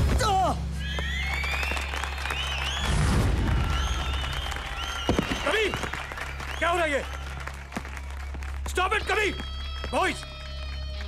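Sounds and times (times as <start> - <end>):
crowd cheering and shouting: 0.8 - 8.2.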